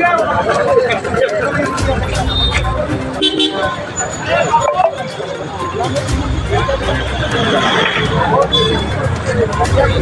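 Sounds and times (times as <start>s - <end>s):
crowd voices: 0.0s - 10.0s
road traffic passing: 0.0s - 10.0s.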